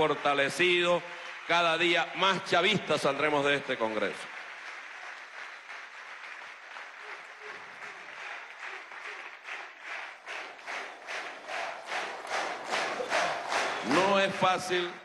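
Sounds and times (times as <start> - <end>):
audience applauding: 0.0 - 15.0.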